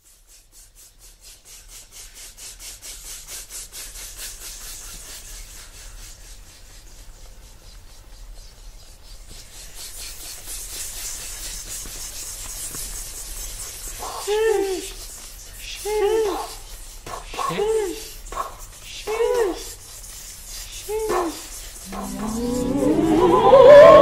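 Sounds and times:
rhythmic rasping scratchy noise: 0:19.6 - 0:24.0.

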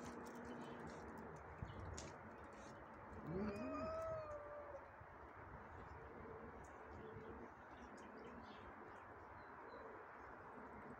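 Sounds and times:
cat yowling: 0:03.3 - 0:04.8.

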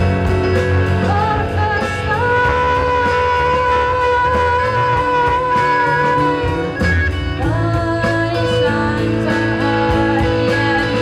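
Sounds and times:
bass: 0:00.0 - 0:11.0
drum kit and cymbals: 0:00.0 - 0:11.0
live rock band playing: 0:00.0 - 0:11.0.

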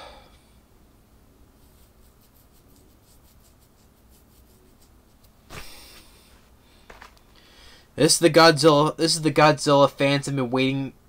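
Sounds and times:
fingers scratching stubbly chin: 0:01.6 - 0:06.0.

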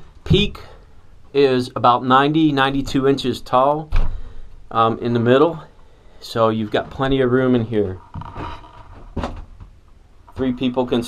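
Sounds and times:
soft knocks and bumps: 0:06.7 - 0:10.5.

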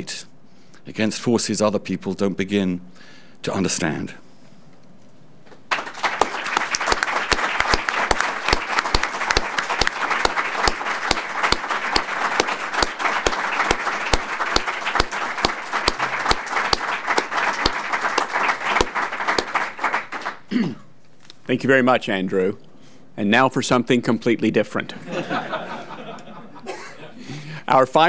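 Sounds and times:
audience applauding: 0:05.7 - 0:20.5.

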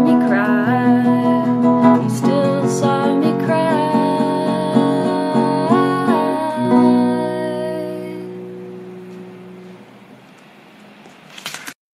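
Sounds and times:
faint steady hiss: 0:00.0 - 0:11.4.

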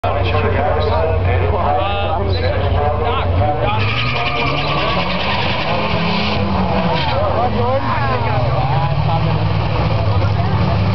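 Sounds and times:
car engines accelerating: 0:00.0 - 0:10.9
spectators talking: 0:00.0 - 0:10.9.

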